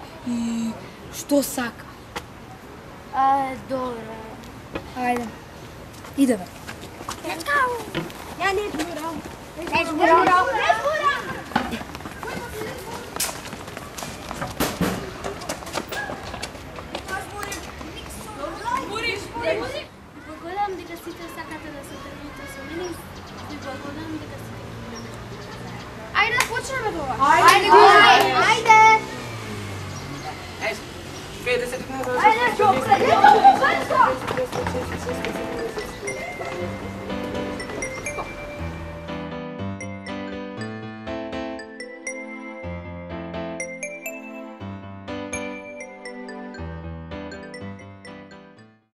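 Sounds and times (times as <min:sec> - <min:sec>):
children running footsteps on concrete: 0:04.4 - 0:19.8, 0:20.7 - 0:38.9
background music: 0:34.4 - 0:48.8.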